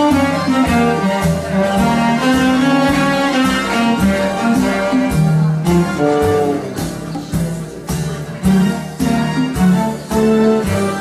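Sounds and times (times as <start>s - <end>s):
backing track with beat: 0.0s - 11.0s
bowed cello melody: 0.0s - 11.0s.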